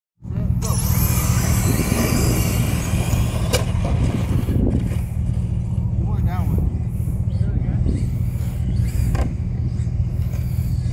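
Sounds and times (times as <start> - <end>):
low rumble: 0.2 - 10.9
toy car motors whining: 0.5 - 5.7, 7.0 - 10.9.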